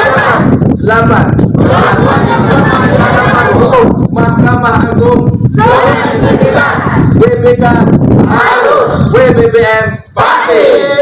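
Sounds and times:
group shouting slogan in unison: 0:00.0 - 0:00.6, 0:01.6 - 0:03.7, 0:05.5 - 0:07.2, 0:08.3 - 0:09.2, 0:10.2 - 0:11.0.

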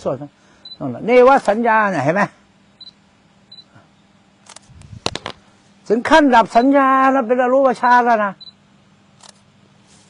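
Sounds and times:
man speaking: 0:00.0 - 0:02.4, 0:05.8 - 0:08.4
sharp clicks: 0:04.4 - 0:05.4
soft low rustle: 0:09.8 - 0:10.0.

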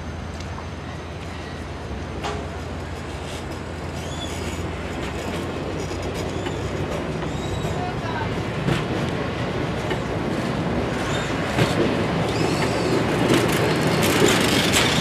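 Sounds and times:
locomotive low hum: 0:00.0 - 0:15.0
train wheels clicking over rail joints: 0:02.0 - 0:15.0.

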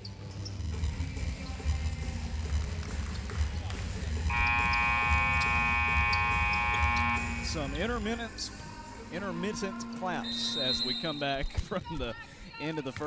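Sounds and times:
bass-heavy music over loudspeakers: 0:00.7 - 0:11.2
crowd noise: 0:01.0 - 0:13.0
arena horn buzzing: 0:04.3 - 0:11.5.

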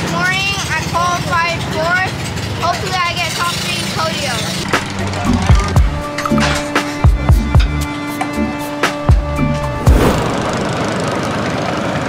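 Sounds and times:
background music: 0:04.5 - 0:10.7
low beats: 0:04.7 - 0:10.8.

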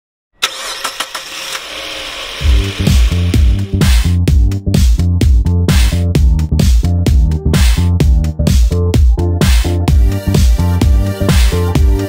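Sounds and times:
car engine starting: 0:00.4 - 0:04.2.

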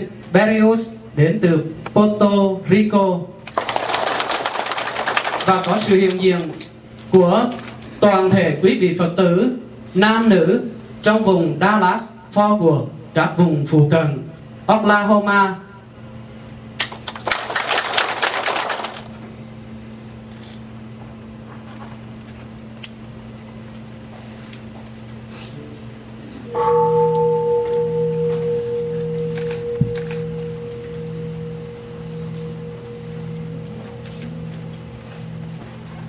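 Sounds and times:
low steady hum: 0:00.0 - 0:36.0
bowl bell ringing: 0:26.1 - 0:36.0
rapid bell strikes: 0:26.5 - 0:36.0.

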